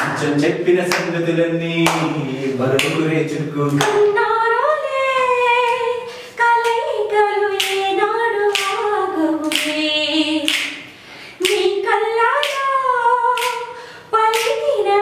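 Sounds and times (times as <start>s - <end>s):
woman singing unaccompanied: 3.8s - 10.8s, 11.4s - 15.0s.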